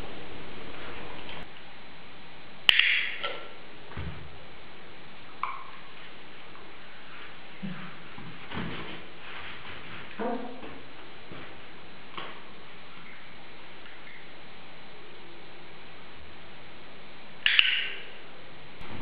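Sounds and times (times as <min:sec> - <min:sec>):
steady background hiss: 0:00.0 - 0:19.0.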